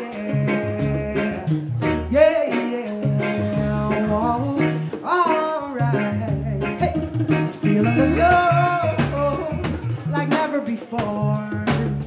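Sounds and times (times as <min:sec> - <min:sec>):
live reggae band playing: 0:00.0 - 0:12.0
wordless singing: 0:00.0 - 0:12.0.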